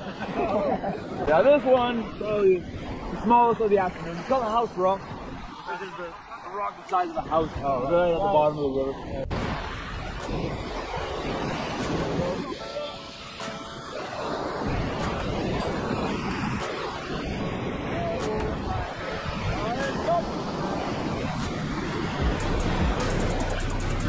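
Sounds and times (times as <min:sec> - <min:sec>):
whitewater rapids rushing: 0:00.0 - 0:24.0
music with steady beat: 0:11.8 - 0:13.8, 0:22.2 - 0:24.0.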